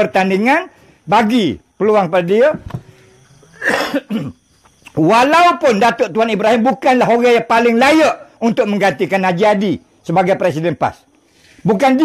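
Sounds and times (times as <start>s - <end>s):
man coughing: 3.5s - 4.4s.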